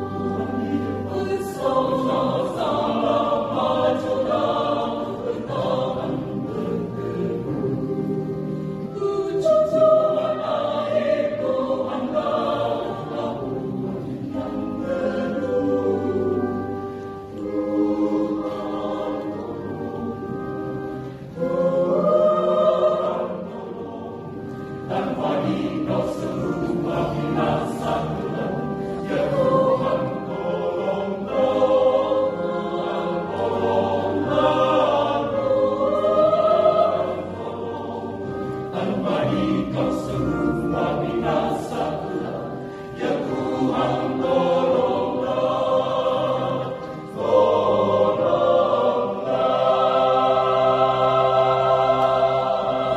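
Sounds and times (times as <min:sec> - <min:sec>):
mixed choir singing: 0:00.0 - 0:52.9.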